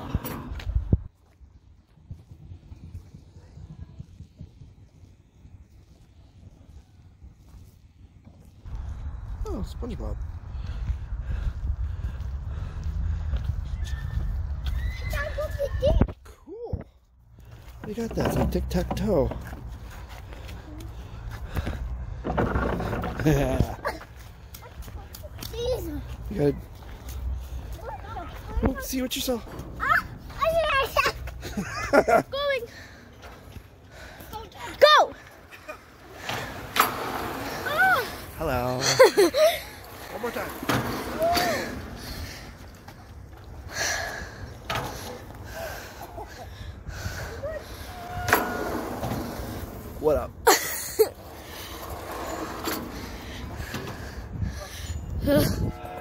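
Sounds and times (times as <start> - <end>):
wind buffeting microphone: 0.0 - 17.4, 39.1 - 50.5, 51.2 - 56.0
trolley rolling on overhead rail: 50.9 - 55.0.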